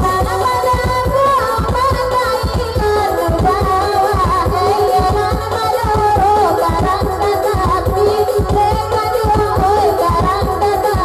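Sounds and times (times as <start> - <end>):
electronic keyboard with beat: 0.0 - 11.0
woman singing: 0.0 - 11.0.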